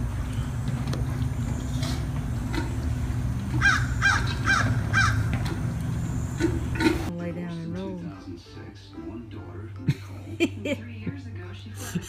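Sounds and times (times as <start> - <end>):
steady low hum: 0.0 - 8.4
bird's harsh call: 3.6 - 5.3.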